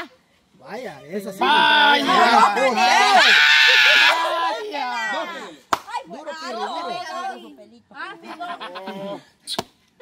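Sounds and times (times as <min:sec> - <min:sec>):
excited voices: 0:00.9 - 0:09.2.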